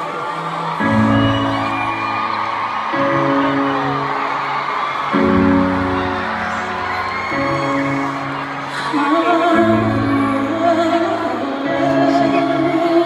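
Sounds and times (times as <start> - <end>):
audience whoops: 0.0 - 13.0
slow ballad sustained chords: 0.0 - 13.0.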